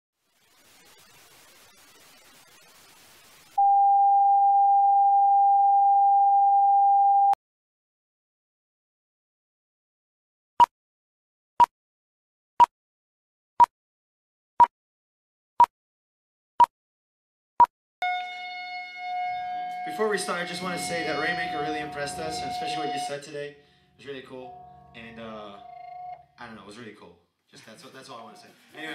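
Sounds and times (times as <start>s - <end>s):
high-pitched amplifier tone: 3.6s - 7.4s, 18.0s - 26.4s
test-tone beep: 3.6s - 7.4s
man speaking into a microphone: 19.9s - 25.6s.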